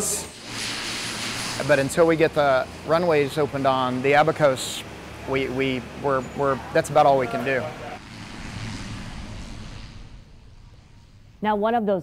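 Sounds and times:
propeller airplane climbing: 0.6 - 11.4.

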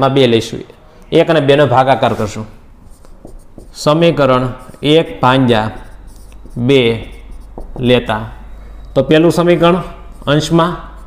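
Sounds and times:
man speaking: 0.0 - 2.6, 3.8 - 8.4, 9.0 - 11.0
marker pen writing on whiteboard: 2.0 - 8.5, 9.3 - 11.0.

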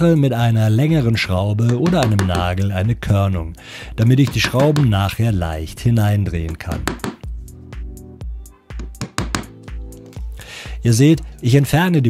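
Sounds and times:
hammer tapping a screw: 1.7 - 2.6, 4.2 - 4.9, 6.5 - 7.2, 8.8 - 9.6
background music with bass beat: 6.4 - 11.6.

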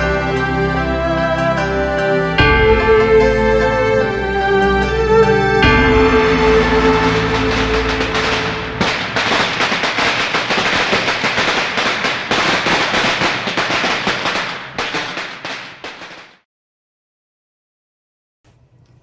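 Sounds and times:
music: 0.0 - 9.2
firecrackers crackling: 6.2 - 16.4.

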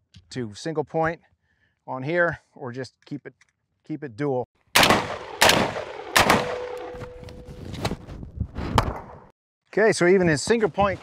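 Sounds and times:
pistol shots: 4.8 - 7.2
rifle shots: 4.8 - 7.2.

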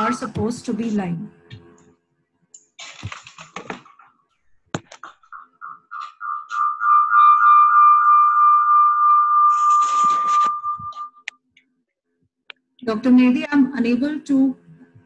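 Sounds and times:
high pulsing feedback tone: 5.4 - 11.3.

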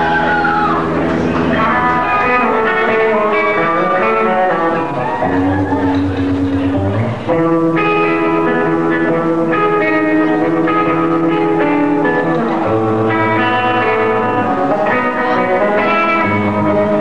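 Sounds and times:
electric guitar chords: 0.0 - 17.0.

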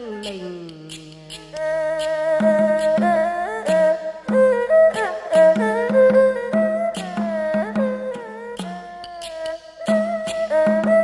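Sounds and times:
bowed fiddle playing: 0.0 - 11.0.

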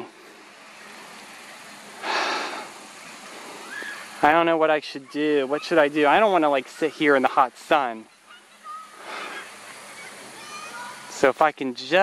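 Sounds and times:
faint background hiss: 0.0 - 12.0
breathy exhale: 2.0 - 3.8, 9.0 - 9.6.

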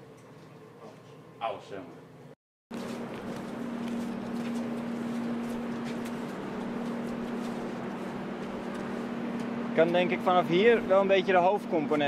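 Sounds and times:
footsteps on a deck: 2.7 - 10.1
machinery drone: 2.7 - 12.0.

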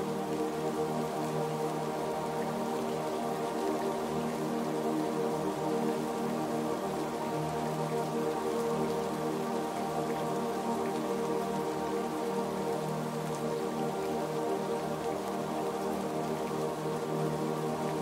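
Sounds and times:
falling rain: 0.0 - 18.0
soft ambient music: 0.0 - 18.0.

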